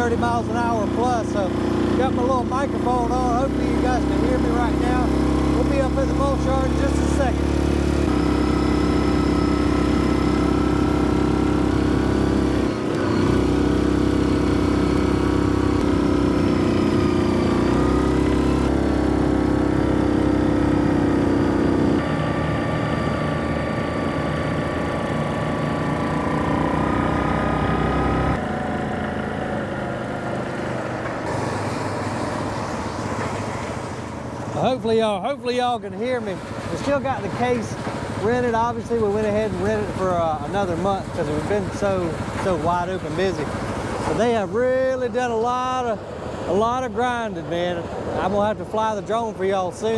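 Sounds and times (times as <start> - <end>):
atv engine running: 0.0 - 49.9.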